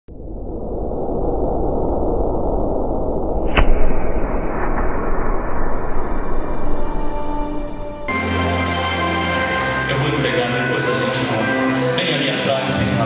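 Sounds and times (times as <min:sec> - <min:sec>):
noisy rumble: 0:00.1 - 0:10.9
sharp crack: 0:03.4 - 0:08.1.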